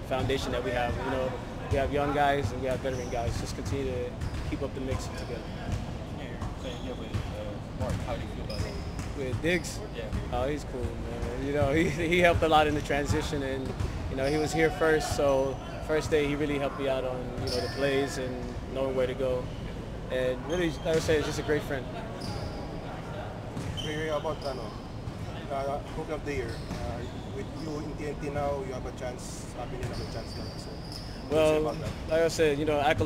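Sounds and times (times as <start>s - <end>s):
hum of large hall: 0.0s - 33.0s
basketballs bouncing on gym floor: 2.7s - 5.1s, 5.7s - 14.1s.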